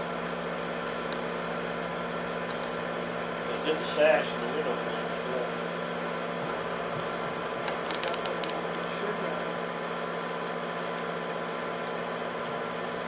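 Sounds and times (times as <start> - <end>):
film projector running: 0.0 - 13.0.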